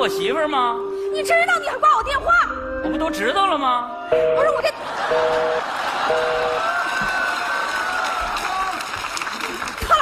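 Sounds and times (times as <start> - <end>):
audience cheering and applauding: 5.0 - 10.0
telephone busy signal beep: 5.1 - 6.6.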